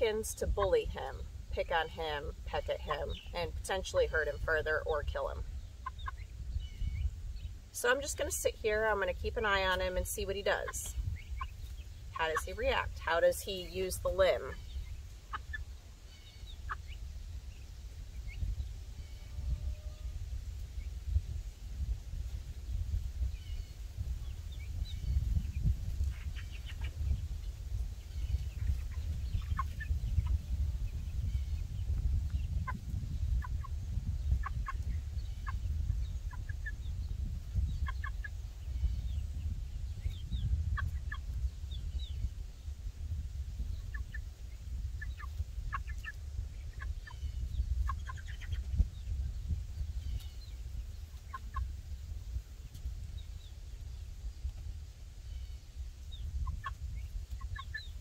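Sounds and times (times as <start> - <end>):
chicks peeping and chirping: 0.1 - 58.0.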